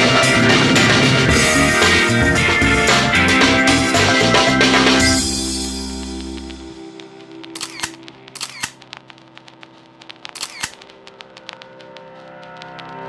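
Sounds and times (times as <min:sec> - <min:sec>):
camera shutter clicks: 0:07.6 - 0:08.8, 0:10.3 - 0:10.8.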